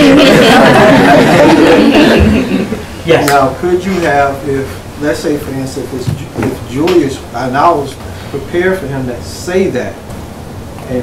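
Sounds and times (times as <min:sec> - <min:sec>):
people talking and laughing: 0:00.0 - 0:03.5.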